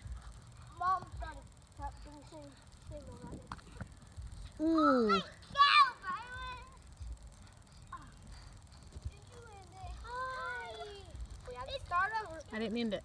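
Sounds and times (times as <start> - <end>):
children shouting: 4.9 - 6.8, 9.9 - 11.2.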